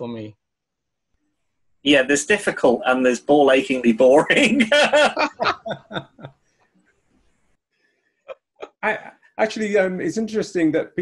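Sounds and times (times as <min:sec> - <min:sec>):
men laughing: 0:04.3 - 0:06.5, 0:08.2 - 0:09.0.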